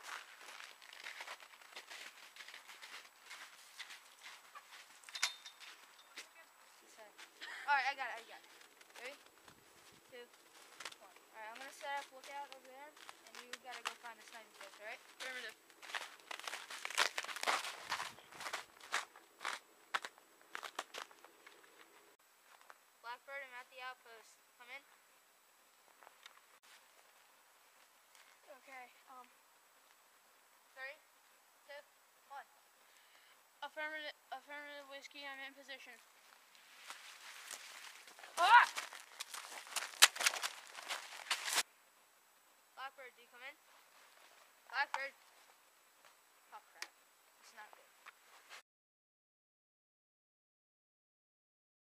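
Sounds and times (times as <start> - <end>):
rustling through branches: 0.0 - 19.7, 24.9 - 30.4, 35.9 - 41.7, 43.6 - 46.5
footsteps crunching in snow: 0.0 - 22.8, 25.9 - 28.7, 35.9 - 41.7, 47.6 - 48.6
twigs snapping: 36.9 - 41.6.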